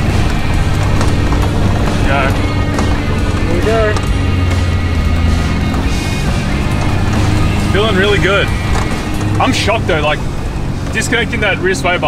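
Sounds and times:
background music: 0.0 - 12.0
vehicle engine and cabin rumble: 0.0 - 12.0.

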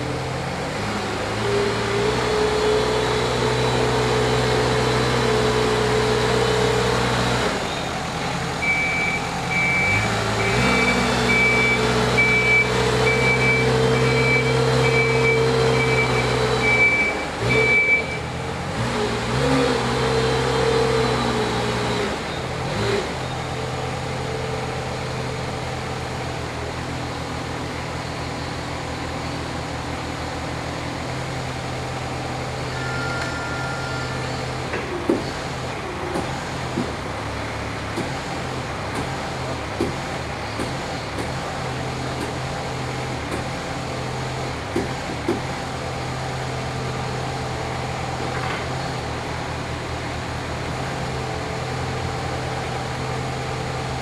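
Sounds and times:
forklift engine running: 0.0 - 54.0
reversing alarm beeping: 8.6 - 18.3, 32.7 - 34.4.

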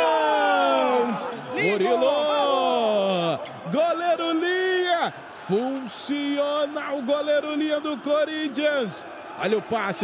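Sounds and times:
men shouting in celebration: 0.0 - 5.2.

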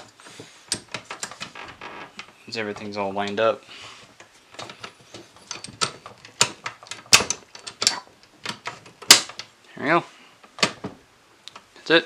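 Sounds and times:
metal and plastic parts clicking: 4.2 - 9.5.

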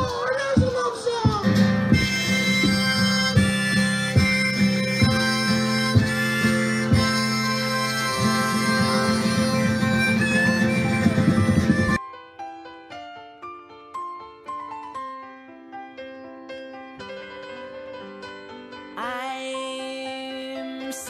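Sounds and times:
live band instrumental music: 0.0 - 12.0.

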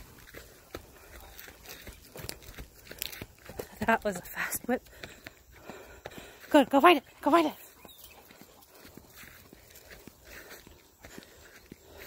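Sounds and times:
footsteps through grass: 0.0 - 4.5, 7.1 - 12.0.

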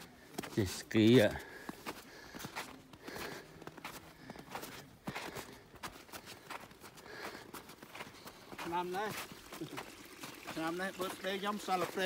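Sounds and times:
footsteps in snow: 0.0 - 12.0.

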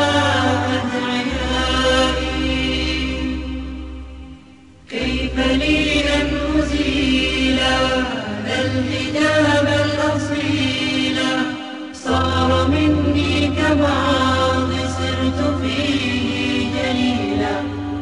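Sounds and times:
chanted vocal melody: 0.0 - 18.0
low steady hum: 0.0 - 18.0.

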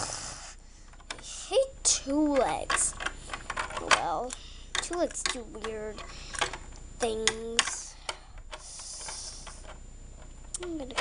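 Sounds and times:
plastic toy clicks and taps: 2.3 - 8.2.

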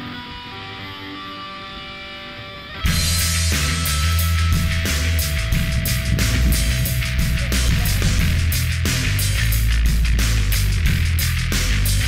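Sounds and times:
guitar music: 0.0 - 12.0
heavy music with strong bass: 2.8 - 12.0.

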